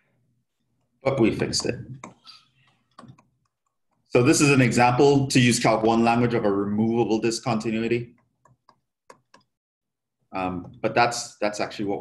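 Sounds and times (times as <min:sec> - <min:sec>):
stylus tapping on tablet screen: 0:01.4 - 0:04.1, 0:08.0 - 0:09.6.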